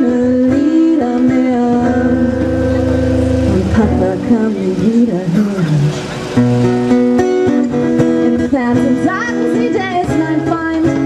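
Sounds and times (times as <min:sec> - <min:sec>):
woman singing: 0:00.0 - 0:02.4, 0:03.4 - 0:06.1, 0:08.2 - 0:11.0
acoustic guitar: 0:00.0 - 0:11.0.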